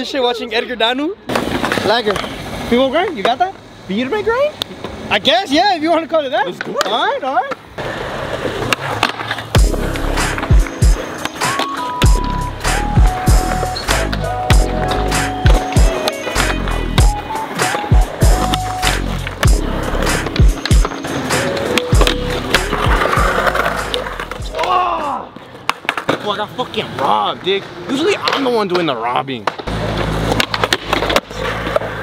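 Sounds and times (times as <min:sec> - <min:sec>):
skateboard rolling on concrete: 0:01.2 - 0:32.0
skateboard clacks and scrapes: 0:01.3 - 0:03.4, 0:07.8 - 0:12.2, 0:14.9 - 0:24.7, 0:25.4 - 0:27.1, 0:28.2 - 0:32.0
music with heavy steady beat: 0:09.6 - 0:24.5.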